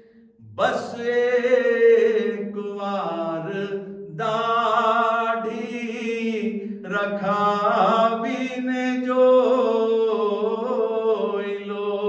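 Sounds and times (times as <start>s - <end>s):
man chanting: 0.4s - 12.0s.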